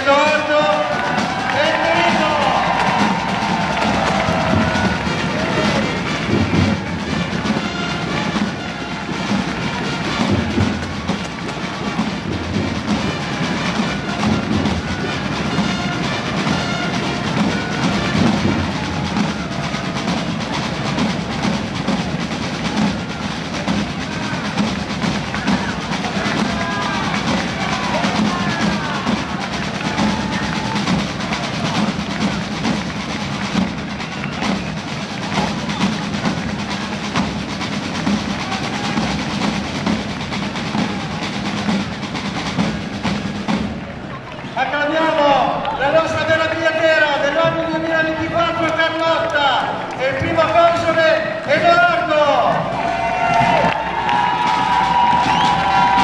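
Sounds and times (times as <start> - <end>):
snare and bass drums rolling: 0.0 - 56.0.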